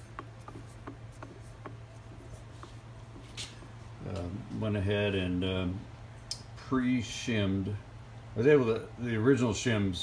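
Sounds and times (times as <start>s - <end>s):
lathe gears clicking and rubbing: 0.0s - 2.8s
steady low hum: 0.0s - 10.0s.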